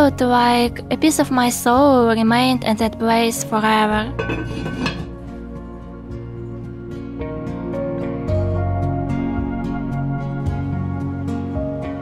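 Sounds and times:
soft background music: 0:00.0 - 0:12.0
heavy metal lid set on pot: 0:04.0 - 0:05.2
short metal scrape: 0:04.2 - 0:05.1.

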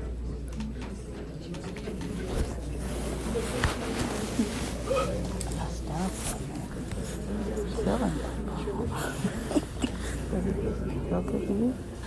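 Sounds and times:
faint murmuring voices: 0:00.0 - 0:12.0.

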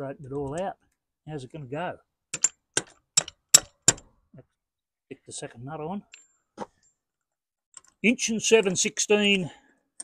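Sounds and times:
metal nut and socket clinking: 0:02.3 - 0:04.1, 0:07.7 - 0:08.9.

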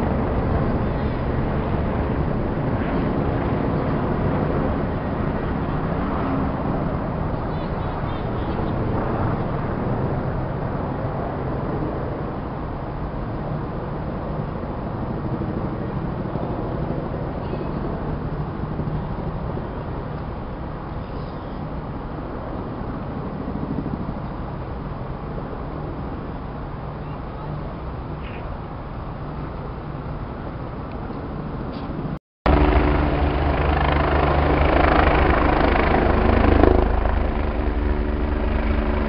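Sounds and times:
low engine rumble: 0:32.5 - 0:39.0.

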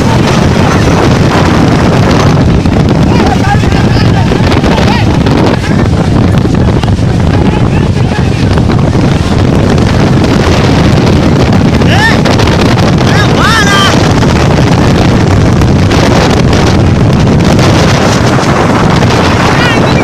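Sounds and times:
strong wind on microphone: 0:00.0 - 0:20.0.

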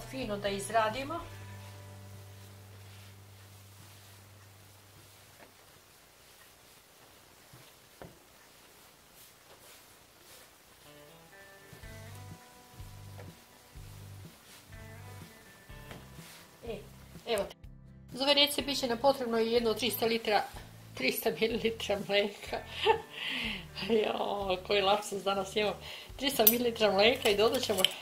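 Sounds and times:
quiet background music: 0:00.0 - 0:28.0.

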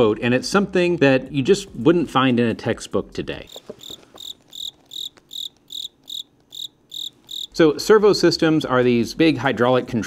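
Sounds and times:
cricket chirping: 0:03.5 - 0:07.5.

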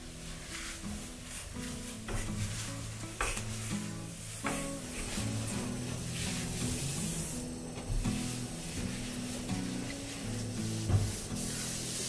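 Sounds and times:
scrubbing glass cooktop: 0:00.0 - 0:12.0
soft background music: 0:00.0 - 0:12.0.

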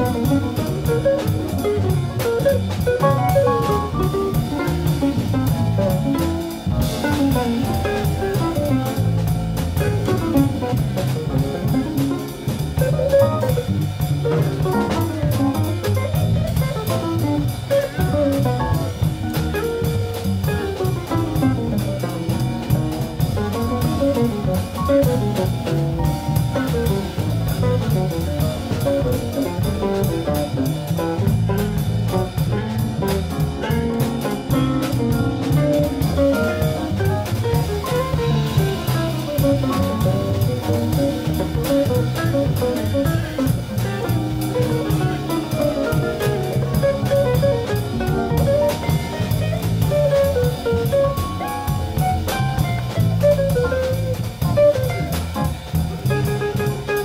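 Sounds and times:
jazz quartet playing: 0:00.0 - 0:57.0.

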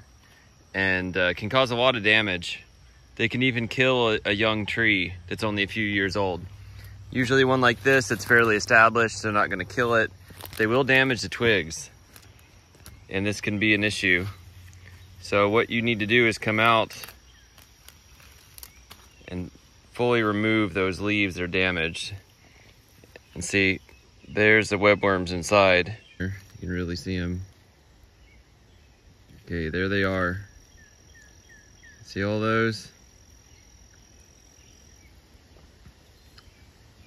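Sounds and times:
high insect drone: 0:00.0 - 0:37.0.

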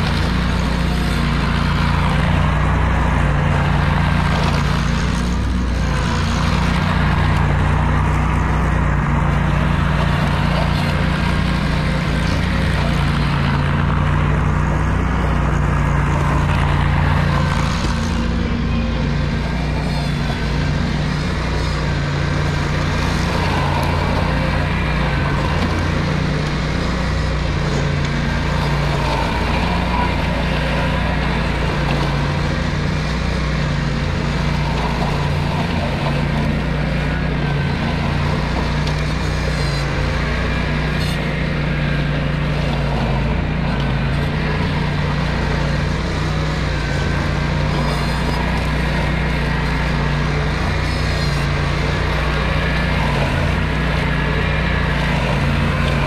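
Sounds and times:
tractor mowing brush: 0:00.0 - 0:56.0.

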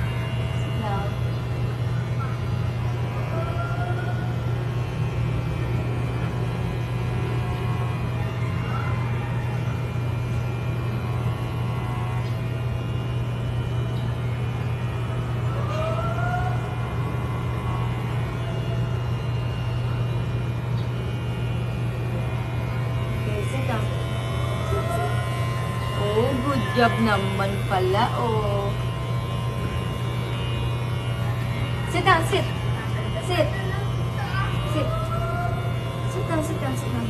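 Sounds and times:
electric hair clippers buzzing: 0:00.0 - 0:37.0.

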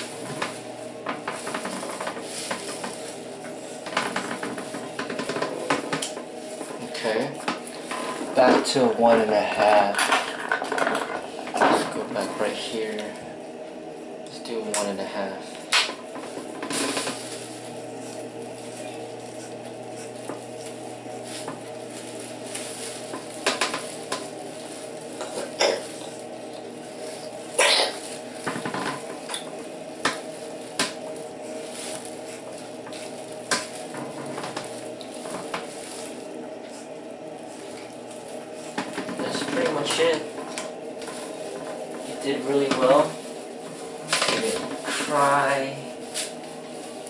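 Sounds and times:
electric hair clipper buzzing: 0:14.6 - 0:43.0.

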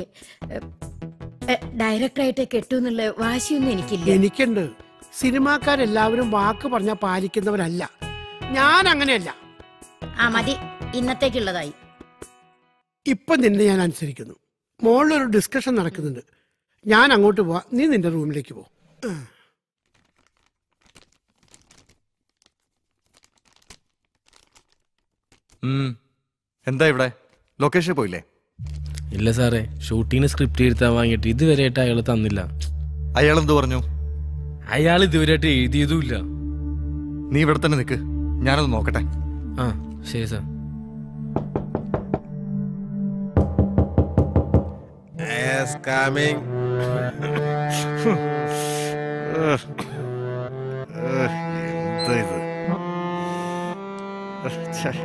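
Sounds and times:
background music with low notes: 0:00.0 - 0:12.8, 0:28.6 - 0:55.0
man sighing: 0:19.0 - 0:19.6
paper sheets rustling: 0:19.8 - 0:25.6
knuckles knocking on a door: 0:41.4 - 0:42.3, 0:43.4 - 0:44.9.

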